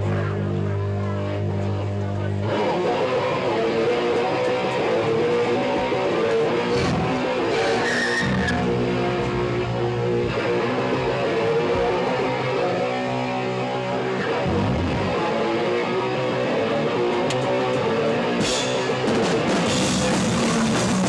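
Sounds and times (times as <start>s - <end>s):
distorted electric guitar: 0.0s - 21.0s
live punk band playing: 0.0s - 21.0s.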